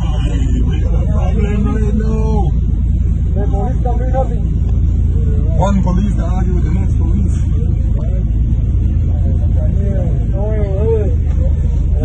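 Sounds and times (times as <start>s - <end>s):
men shouting: 0.0s - 4.4s
motorcycle engines rumbling: 0.0s - 12.0s.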